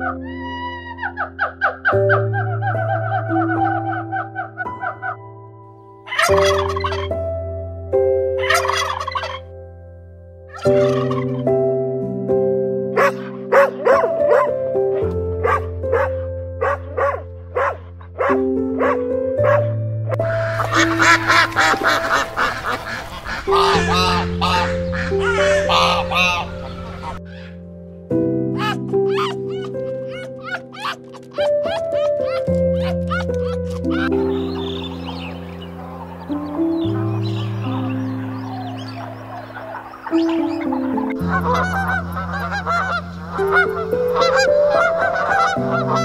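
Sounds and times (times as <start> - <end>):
turkeys gobbling and clucking: 6.1 - 7.2, 8.4 - 9.5, 10.5 - 11.4, 20.2 - 27.5, 38.4 - 46.0
soft held piano notes: 9.4 - 46.0.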